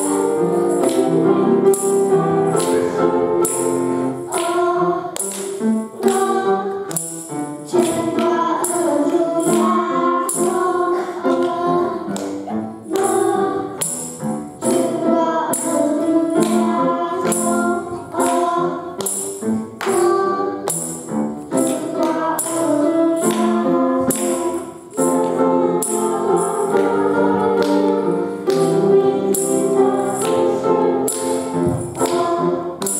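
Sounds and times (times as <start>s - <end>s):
children singing into microphones: 0.0s - 32.9s
instrumental accompaniment with beat: 0.0s - 32.9s.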